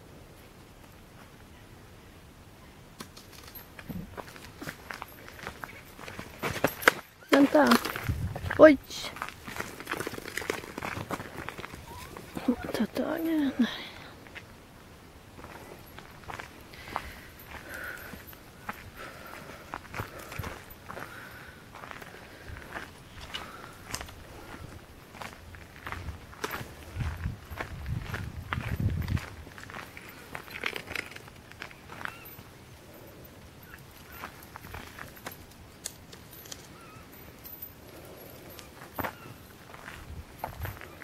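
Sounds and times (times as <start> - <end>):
footsteps on gravel: 3.5 - 14.5, 15.3 - 32.4, 34.0 - 35.5, 37.9 - 41.0.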